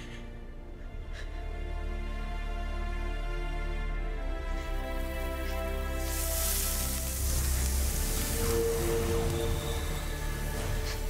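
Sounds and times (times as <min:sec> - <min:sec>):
fire hissing: 0:04.5 - 0:11.0
low rumble: 0:05.1 - 0:11.0.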